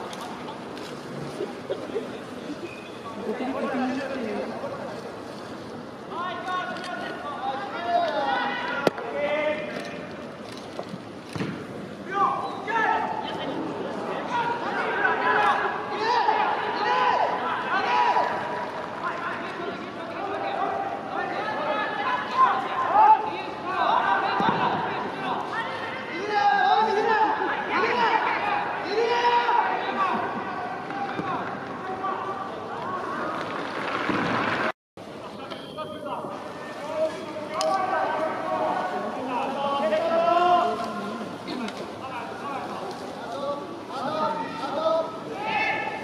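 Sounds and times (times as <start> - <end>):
people shouting: 14.2 - 18.7, 20.2 - 32.4, 44.2 - 46.0.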